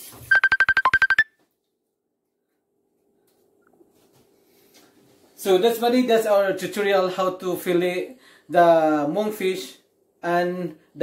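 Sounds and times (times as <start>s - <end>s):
short high electronic beeps: 0.2s - 1.3s.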